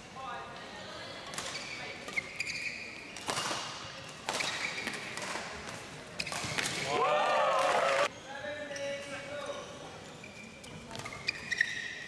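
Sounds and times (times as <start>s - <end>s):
shoes squeaking on court: 1.3s - 5.4s, 6.2s - 6.9s, 8.7s - 12.0s
racket hitting shuttlecock: 3.2s - 6.9s.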